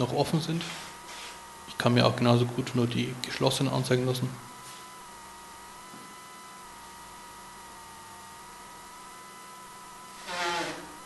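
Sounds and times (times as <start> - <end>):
electrical hum with whine: 0.0 - 11.0.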